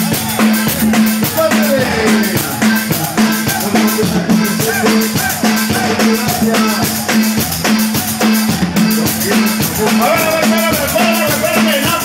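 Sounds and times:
accordion melody: 0.0 - 12.0
bass: 0.0 - 12.0
drum kit: 0.0 - 12.0.

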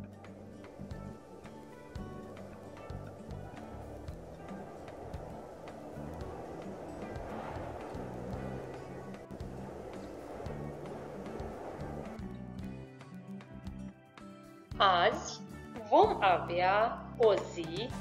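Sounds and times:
rushing wind gust: 0.0 - 13.9
background music: 0.0 - 18.0.

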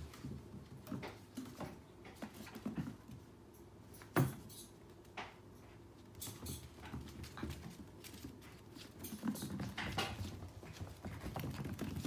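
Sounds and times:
puppy taps and scuffles on floor: 0.0 - 3.3, 3.9 - 12.0.

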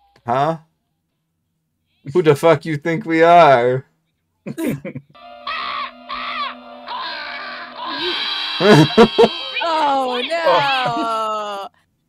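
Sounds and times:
eerie music chord: 5.2 - 9.3
cartoon howling cries: 5.4 - 11.7.

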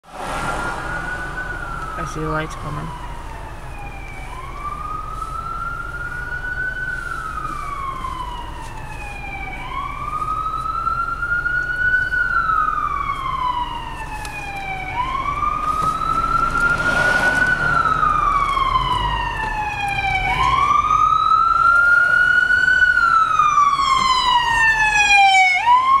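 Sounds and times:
emergency siren wailing: 0.0 - 26.0
traffic rumble inside car: 0.0 - 26.0.

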